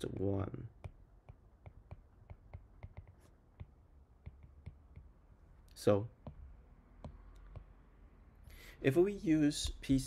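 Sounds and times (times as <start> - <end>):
man talking: 0.0 - 0.7, 8.8 - 10.0
stylus tapping on tablet screen: 0.0 - 5.2, 6.2 - 7.8.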